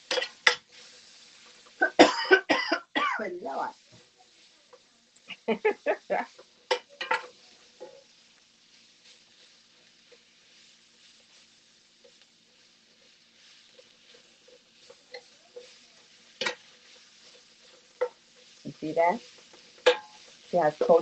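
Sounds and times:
spatula scraping a pan: 0.0s - 2.0s, 3.4s - 21.0s
vegetables sizzling in a skillet: 0.0s - 21.0s.

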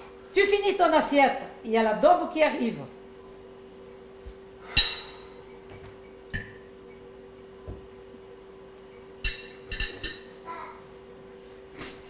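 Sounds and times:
tableware clinking: 4.7s - 5.2s, 6.3s - 6.7s, 9.2s - 10.3s.

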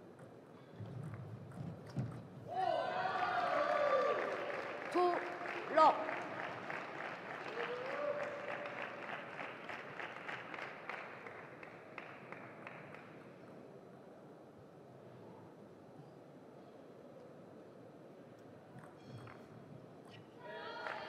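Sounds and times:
spectators clapping and cheering: 2.6s - 13.3s, 20.6s - 21.0s.

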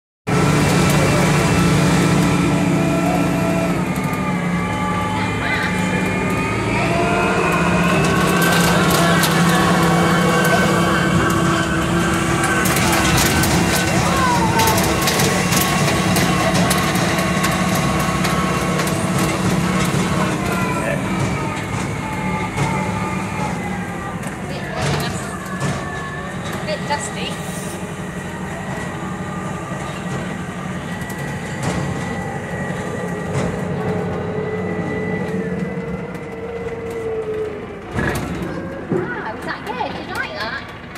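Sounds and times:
tractor engine running: 0.3s - 40.9s
trailer rattling and clatter: 0.3s - 40.9s.

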